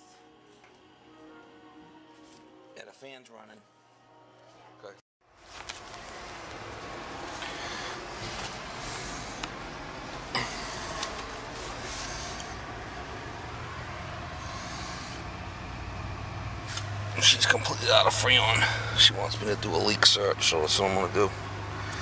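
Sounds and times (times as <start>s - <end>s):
air conditioner unit whirring: 5.3s - 22.0s.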